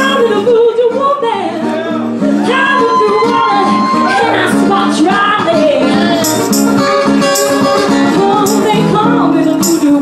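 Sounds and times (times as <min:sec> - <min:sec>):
woman singing: 0:00.0 - 0:06.8, 0:07.9 - 0:10.0
strummed acoustic guitar: 0:00.0 - 0:10.0.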